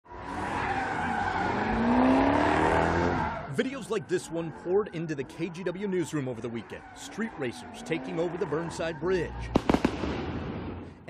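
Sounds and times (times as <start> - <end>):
car engine revving: 0.1 - 9.8
tires squealing on pavement: 0.1 - 9.8.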